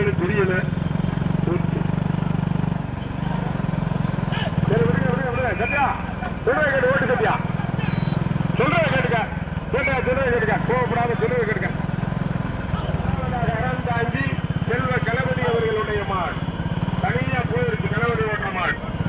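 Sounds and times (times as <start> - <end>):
motorcycle engines running: 0.0 - 19.0.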